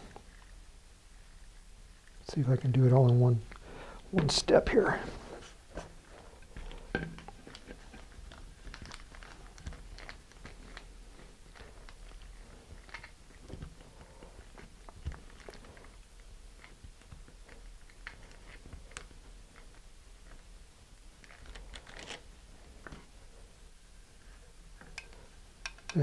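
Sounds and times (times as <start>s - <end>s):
plastic bag crinkling: 4.9s - 20.4s, 21.2s - 22.3s.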